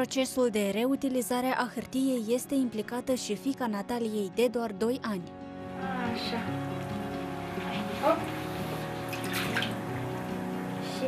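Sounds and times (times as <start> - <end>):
woman speaking: 0.0 - 6.6, 8.0 - 8.3
background music: 0.0 - 11.0
water sloshing and dripping: 6.7 - 10.8.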